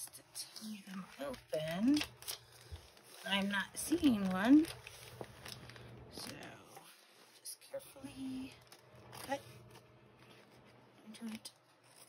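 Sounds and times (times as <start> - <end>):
person speaking: 0.0 - 2.2, 3.1 - 4.8
plastic envelope rustling: 0.0 - 7.5, 8.1 - 12.0.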